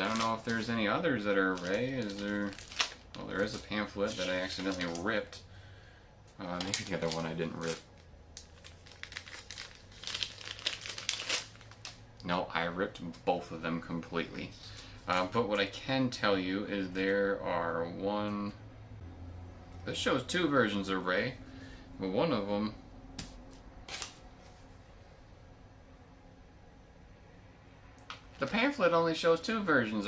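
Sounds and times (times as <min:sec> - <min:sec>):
paper packaging crinkling: 0:00.0 - 0:05.3, 0:06.4 - 0:12.0, 0:23.2 - 0:24.6
paper rustling: 0:01.4 - 0:05.1, 0:23.2 - 0:24.7.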